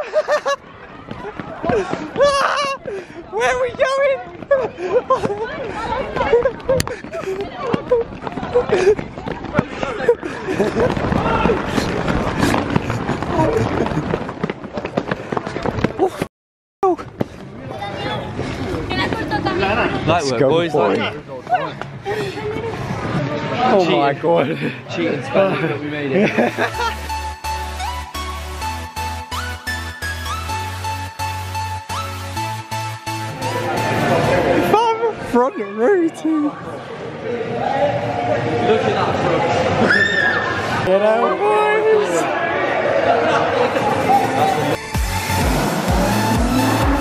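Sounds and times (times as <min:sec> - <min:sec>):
crowd noise: 0:00.0 - 0:47.0
quick footsteps on brick paving: 0:00.2 - 0:16.3, 0:16.9 - 0:19.6
young men chattering: 0:01.5 - 0:11.9, 0:17.8 - 0:26.9, 0:33.3 - 0:39.8, 0:40.6 - 0:44.8
people shouting: 0:11.1 - 0:11.9.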